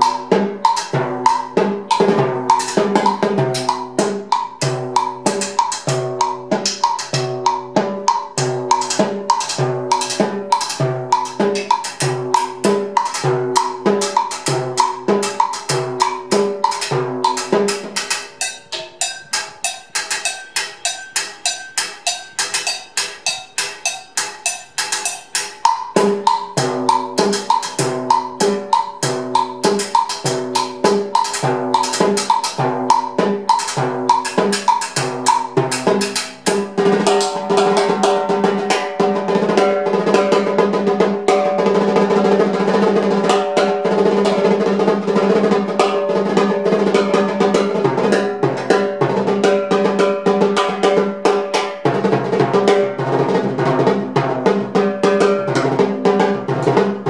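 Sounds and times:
clicking block pattern: 0:00.0 - 0:37.4
cowbell hits: 0:00.0 - 0:40.6
timbales played with sticks: 0:00.0 - 0:57.0.

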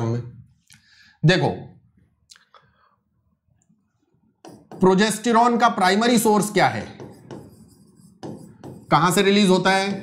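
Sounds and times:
stylus tapping on screen: 0:04.4 - 0:05.0.

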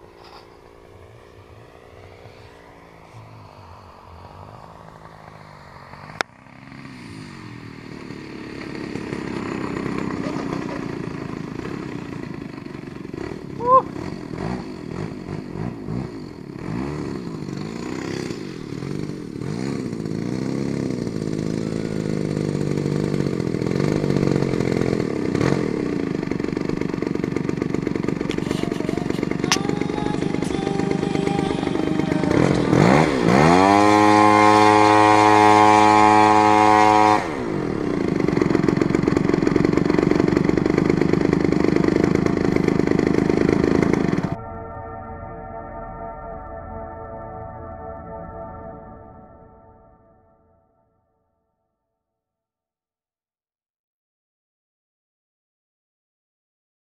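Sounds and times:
model plane engine running: 0:00.0 - 0:44.4.

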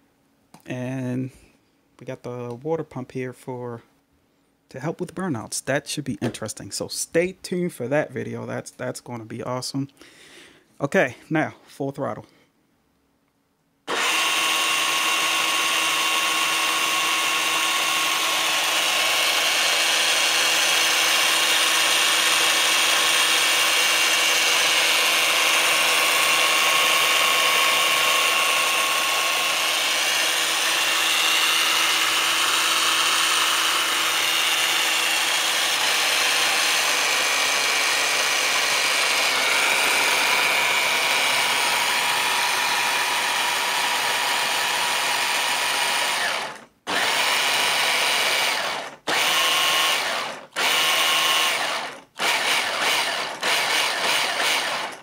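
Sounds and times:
electric motor whining: 0:13.9 - 0:55.0.

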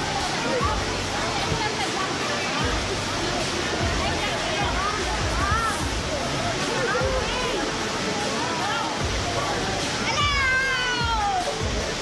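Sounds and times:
people shouting and talking: 0:00.0 - 0:12.0
waterfall rushing into pool: 0:00.0 - 0:12.0.

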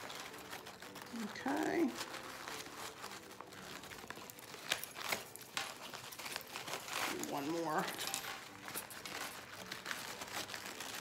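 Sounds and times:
fabric ribbon rustling: 0:00.0 - 0:11.0.

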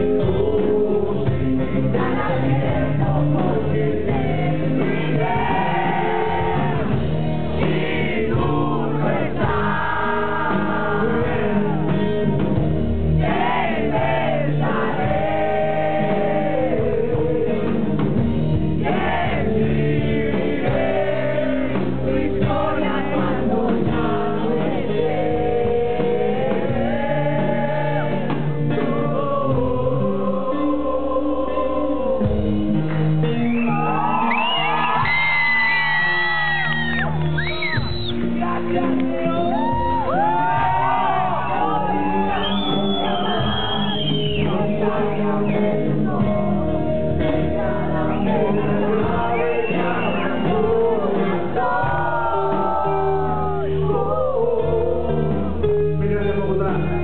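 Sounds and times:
acoustic rock band playing: 0:00.0 - 0:57.0.

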